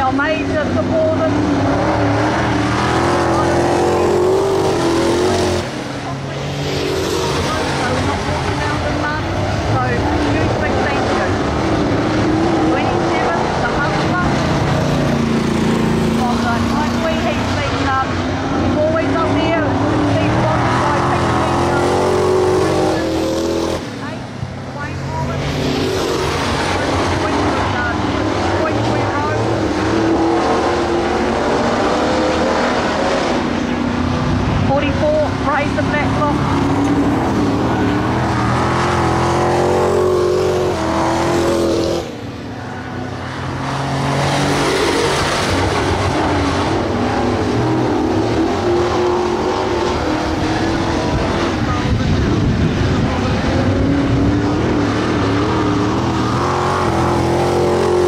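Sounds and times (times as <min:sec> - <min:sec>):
race car engines revving: 0:00.0 - 0:58.0.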